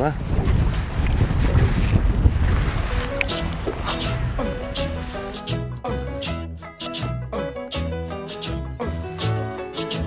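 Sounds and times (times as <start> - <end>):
wind buffeting microphone: 0.0 - 5.4
background music: 3.0 - 10.0.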